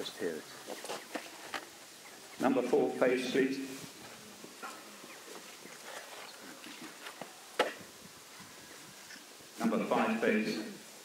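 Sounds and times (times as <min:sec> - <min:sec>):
faint knocks and rustles: 0:00.6 - 0:01.8, 0:03.8 - 0:09.3.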